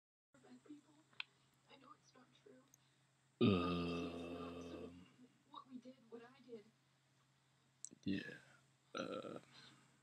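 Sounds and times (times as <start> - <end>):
man burping: 3.4 - 5.0, 9.0 - 9.5.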